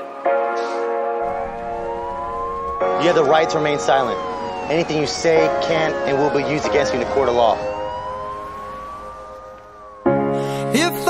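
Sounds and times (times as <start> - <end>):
police siren winding up: 1.3 - 10.0.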